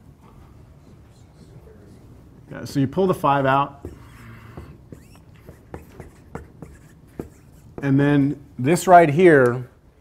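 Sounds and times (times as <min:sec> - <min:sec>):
pen tapping and scraping on whiteboard: 0:03.8 - 0:08.0.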